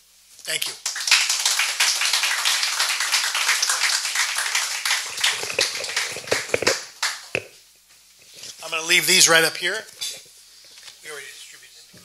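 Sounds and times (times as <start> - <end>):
audience applauding: 0.8 - 7.5.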